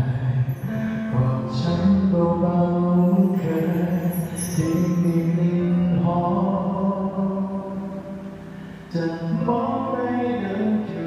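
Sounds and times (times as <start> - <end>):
backing track: 0.0 - 11.0
man singing long held notes: 0.0 - 11.0.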